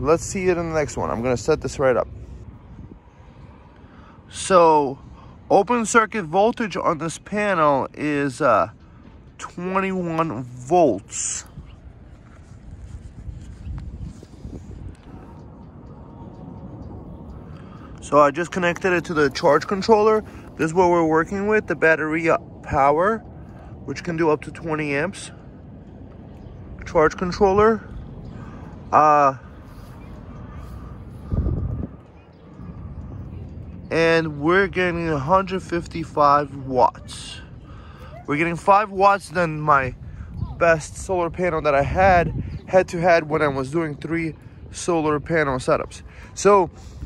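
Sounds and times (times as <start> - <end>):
low outdoor rumble: 0.0 - 47.0.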